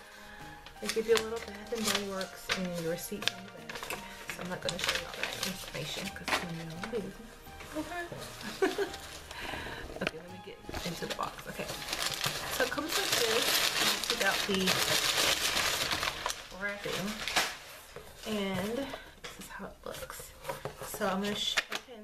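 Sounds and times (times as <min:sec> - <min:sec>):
packing paper crumpling: 0:00.0 - 0:21.9.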